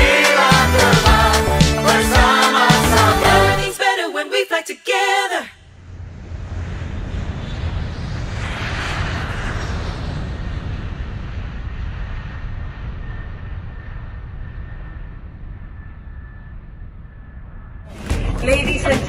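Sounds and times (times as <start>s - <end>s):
jet engine rumble: 5.7s - 19.0s
faint thin whine: 12.0s - 17.9s.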